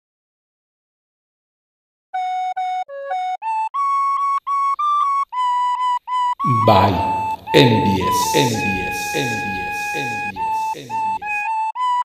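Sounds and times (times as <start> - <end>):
recorder melody: 6.4 - 11.5.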